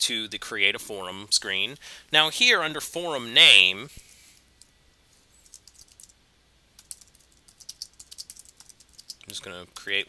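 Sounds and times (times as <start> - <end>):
typing on computer keyboard: 5.4 - 6.1, 6.8 - 9.2.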